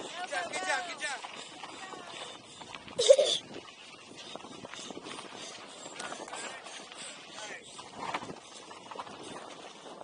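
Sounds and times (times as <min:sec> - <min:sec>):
wind on microphone: 0:00.0 - 0:10.0
bike clicking and rattling: 0:04.1 - 0:10.0.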